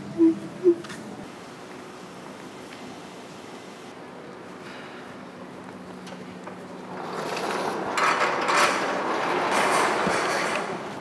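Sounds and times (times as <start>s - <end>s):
metal hardware rattling and grinding: 7.2s - 10.9s.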